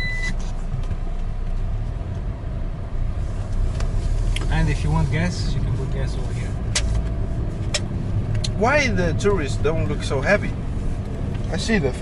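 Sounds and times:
engine and tyre rumble: 0.0 - 12.0.

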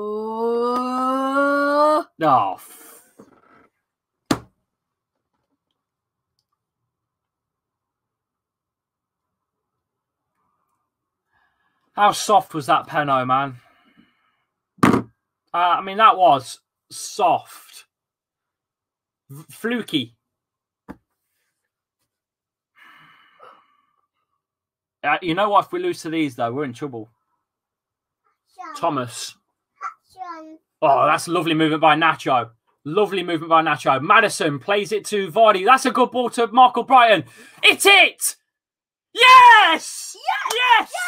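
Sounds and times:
sharp knock: 14.8 - 15.1
breathy sigh: 22.8 - 23.9.

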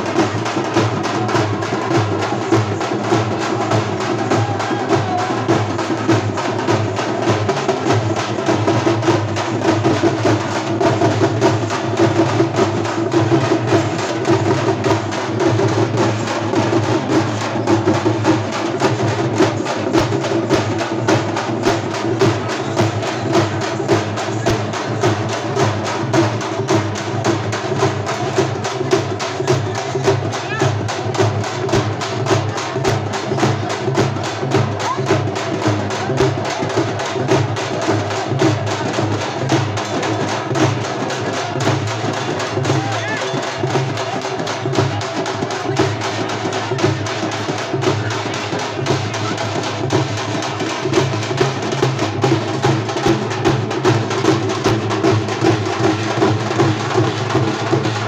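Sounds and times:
crowd voices: 0.0 - 58.0
drums beaten with sticks: 0.0 - 58.0.

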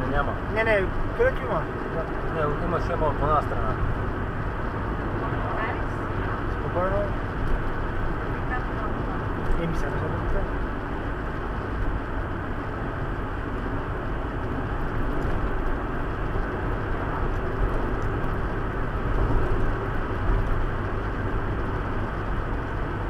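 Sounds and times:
car road noise: 0.0 - 23.0.

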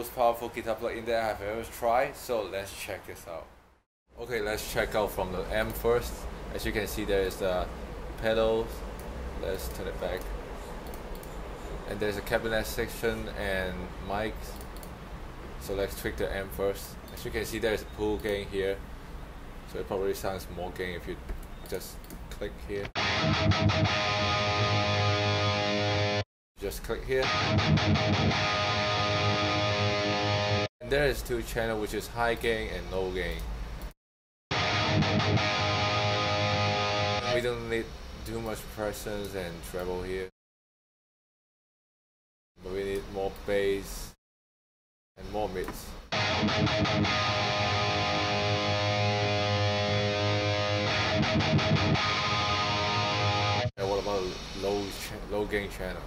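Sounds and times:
distorted electric guitar chord: 23.0 - 26.2, 27.2 - 30.7, 34.5 - 37.4, 46.1 - 53.7.

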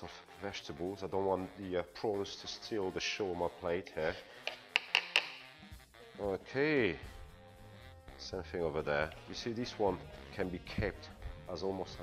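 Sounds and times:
knife clicking on chopping board: 4.5 - 5.4.

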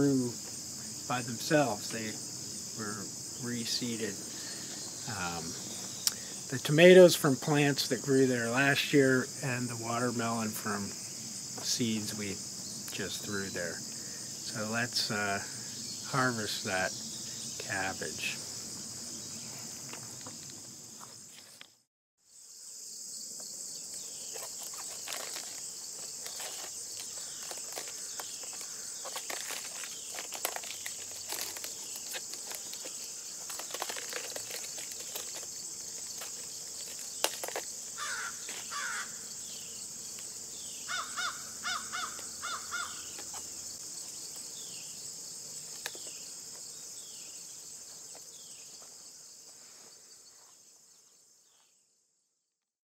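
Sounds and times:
insects chirring: 0.0 - 52.2
leaves crackling and rustling: 23.8 - 39.1
bird calling: 40.8 - 43.4.

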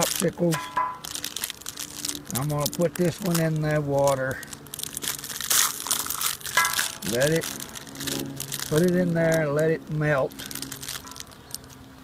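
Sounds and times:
plastic wrapper crinkling: 0.0 - 12.0.

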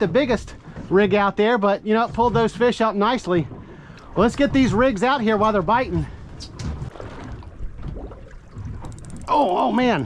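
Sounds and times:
water lapping against boat hull: 0.0 - 10.0
wind buffeting microphone: 2.0 - 10.0.

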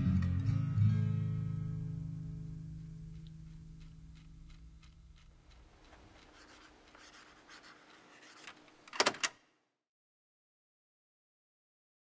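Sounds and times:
sharp clicks: 3.2 - 7.5.

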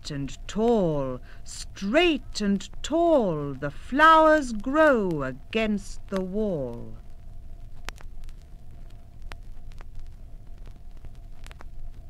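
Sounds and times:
low rumble and hum: 0.0 - 12.0
vinyl clicks and pops: 4.6 - 12.0.

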